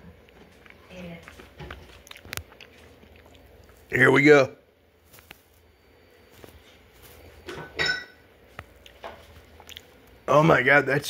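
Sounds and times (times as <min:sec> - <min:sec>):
person sipping and swallowing: 0:08.8 - 0:10.1.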